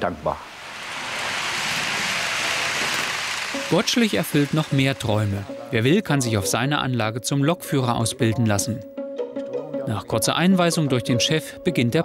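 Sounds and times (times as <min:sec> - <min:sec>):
model train rushing past: 0:00.0 - 0:06.3.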